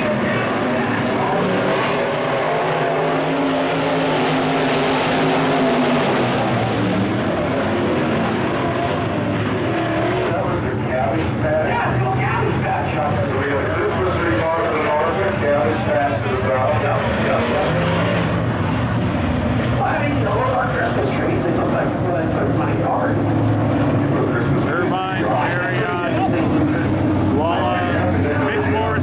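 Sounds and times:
race car engines droning: 0:00.0 - 0:29.0.

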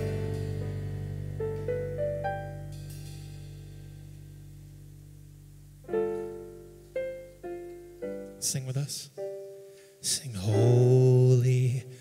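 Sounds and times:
electric keyboard piano chords: 0:00.0 - 0:11.5.

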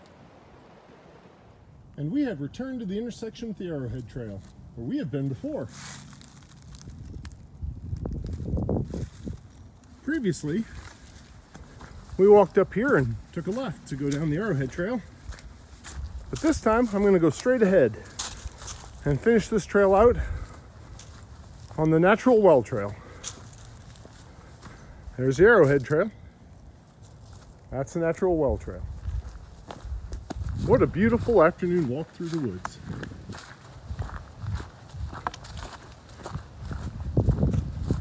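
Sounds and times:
footsteps on leafy dirt trail: 0:03.8 - 0:38.0
wind rumble on microphone: 0:06.6 - 0:09.9, 0:15.2 - 0:16.8, 0:28.5 - 0:31.6, 0:32.6 - 0:38.0.

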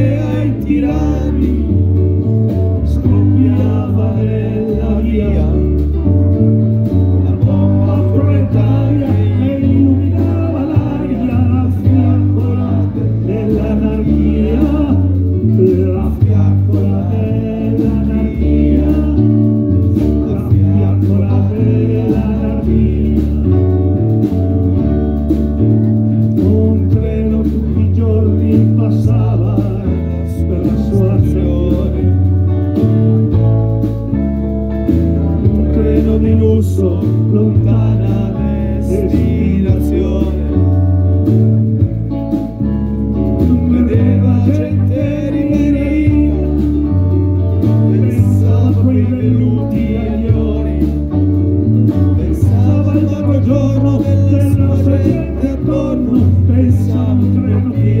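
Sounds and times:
bass guitar: 0:00.0 - 0:58.0
drums: 0:00.0 - 0:58.0.

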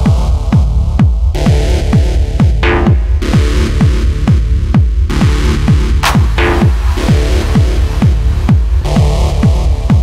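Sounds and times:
techno dance music: 0:00.0 - 0:10.0.

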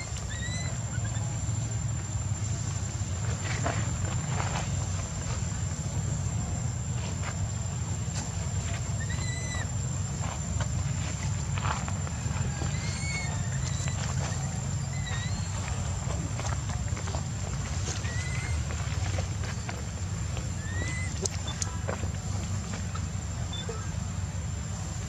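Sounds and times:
infant monkey crying: 0:00.0 - 0:01.5, 0:08.9 - 0:09.8, 0:12.5 - 0:15.7, 0:17.9 - 0:19.0, 0:20.6 - 0:21.6, 0:23.5 - 0:24.0.

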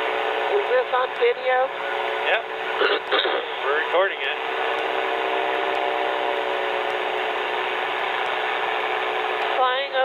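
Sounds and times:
ultralight engine and propeller droning: 0:00.0 - 0:10.0.

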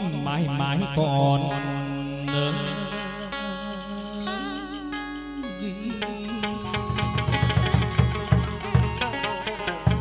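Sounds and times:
ritual singing voice: 0:00.0 - 0:09.2
musical accompaniment: 0:01.4 - 0:10.0.

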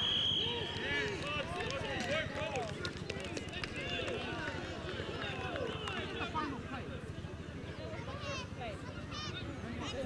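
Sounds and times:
overlapping voices chattering: 0:00.5 - 0:10.0.

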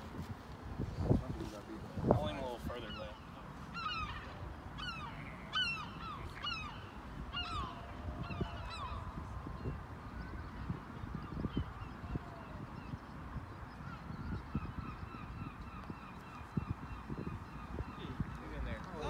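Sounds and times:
birds honking: 0:02.2 - 0:08.9.

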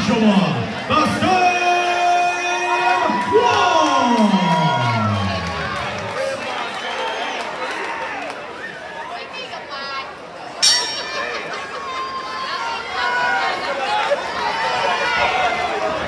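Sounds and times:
crowd cheering: 0:01.2 - 0:09.3, 0:10.6 - 0:16.0.

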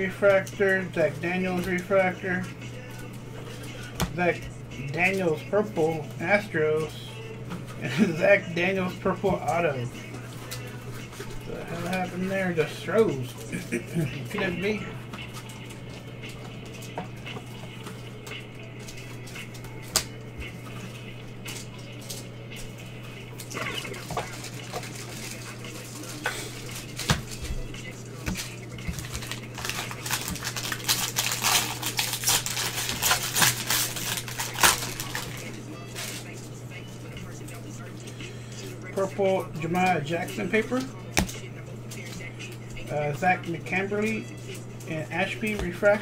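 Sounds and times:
electrical hum: 0:00.0 - 0:46.0
foil wrapper crinkling: 0:23.4 - 0:27.4, 0:28.2 - 0:36.4
cards clicking and tapping: 0:26.9 - 0:27.4.

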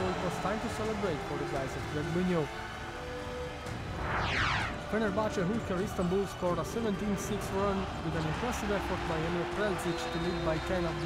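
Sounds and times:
arena crowd noise: 0:00.0 - 0:11.0
background music: 0:00.0 - 0:11.0
downward-sweeping whoosh: 0:03.8 - 0:04.9.

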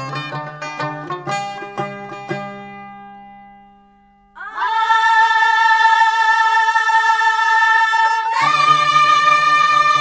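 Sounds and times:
high voice singing a long note: 0:04.4 - 0:10.0.

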